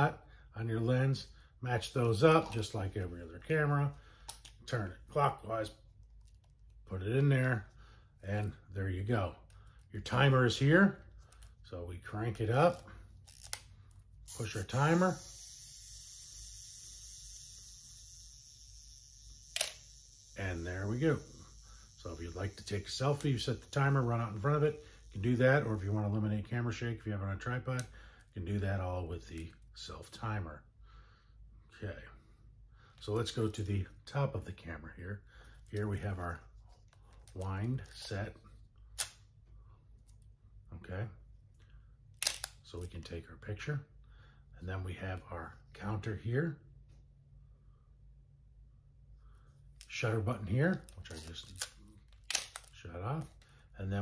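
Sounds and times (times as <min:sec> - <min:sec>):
camera self-timer whirring: 0:14.2 - 0:25.8.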